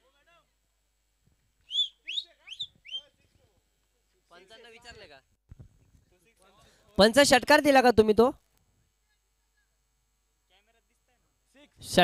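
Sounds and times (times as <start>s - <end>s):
short whistled calls: 1.6s - 3.2s.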